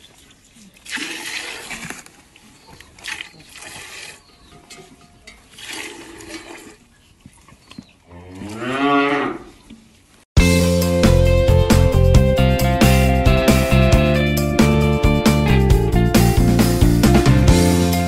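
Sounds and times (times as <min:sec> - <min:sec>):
milk squirting from hand milking: 0:00.6 - 0:04.3, 0:05.5 - 0:06.9
cow mooing: 0:08.1 - 0:09.5.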